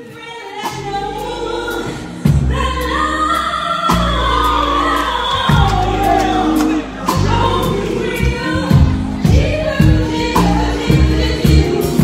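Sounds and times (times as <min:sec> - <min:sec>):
band with keyboards: 0:00.0 - 0:12.0
gospel choir singing: 0:00.4 - 0:12.0.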